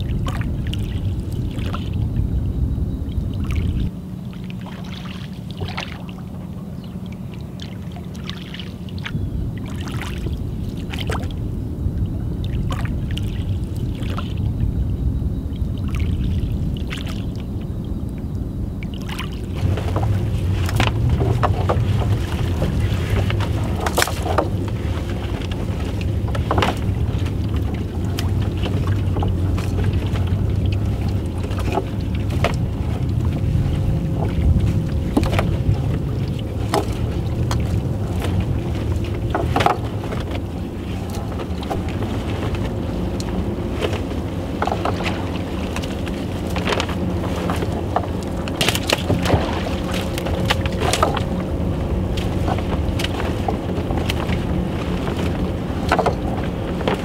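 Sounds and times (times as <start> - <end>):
low engine hum: 0.0 - 57.0
fishing net hauled over wood: 19.0 - 57.0
oars knocking in oarlocks: 19.5 - 57.0.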